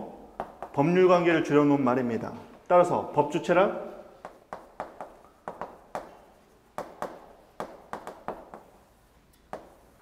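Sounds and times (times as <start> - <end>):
chalk tapping on a chalkboard: 0.4 - 1.0, 4.2 - 10.0.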